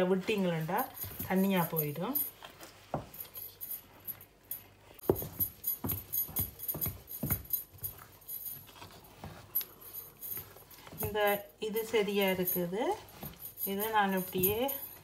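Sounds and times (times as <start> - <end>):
bangles jingling: 0.3 - 15.0.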